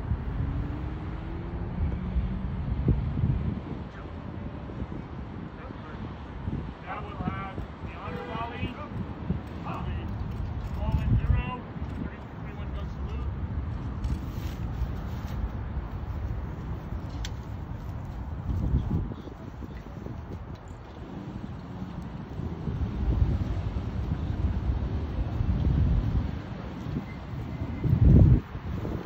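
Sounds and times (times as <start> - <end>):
wind rumble on microphone: 0.0 - 29.0.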